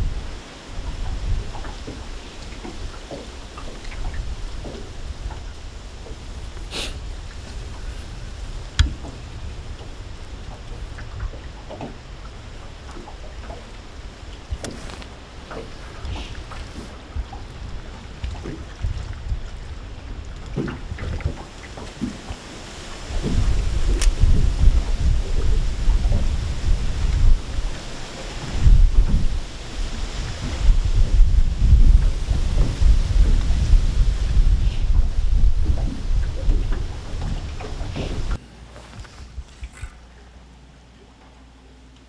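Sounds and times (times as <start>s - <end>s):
wind buffeting microphone: 0.0s - 38.4s.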